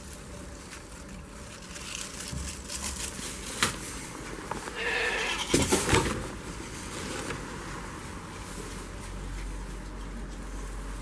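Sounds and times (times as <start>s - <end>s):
goat bleating: 4.8s - 5.6s.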